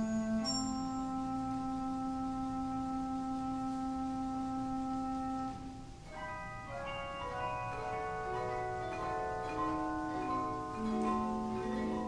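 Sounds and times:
theatre organ chord: 0.0 - 12.0.

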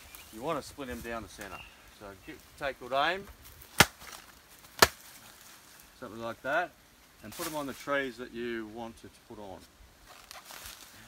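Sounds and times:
machete chopping banana stem: 3.7 - 4.2, 4.8 - 5.0.

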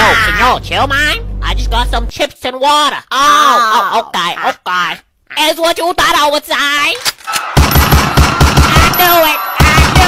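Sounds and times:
machine-gun automatic fire: 7.6 - 9.0, 9.6 - 10.0.

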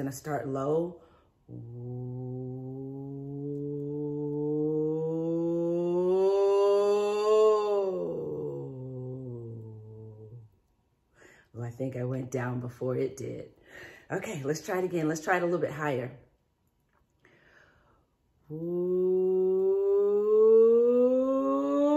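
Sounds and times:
woman singing a vocal siren: 0.4 - 10.5, 18.5 - 21.9.

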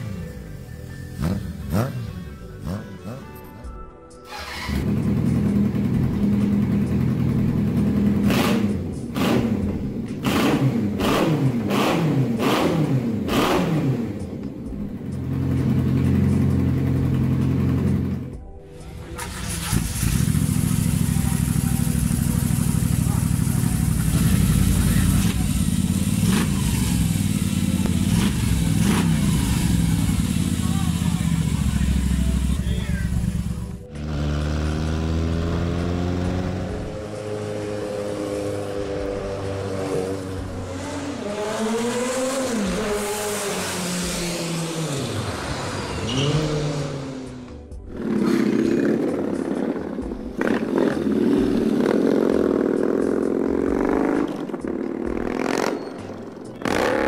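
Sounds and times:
motorcycle engine revving: 0.0 - 3.4, 4.3 - 18.4, 19.0 - 57.0
motorcycle engine running: 0.0 - 3.4, 4.3 - 18.4, 19.2 - 41.8, 46.3 - 57.0.

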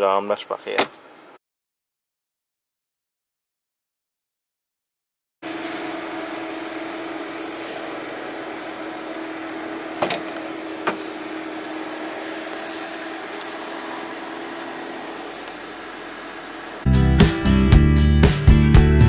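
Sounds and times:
steady hum: 5.5 - 16.9.

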